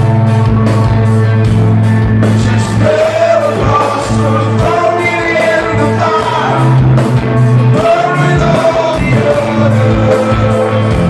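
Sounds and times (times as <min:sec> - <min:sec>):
live rock band playing: 0:00.0 - 0:11.0
lead vocalist singing: 0:02.3 - 0:11.0.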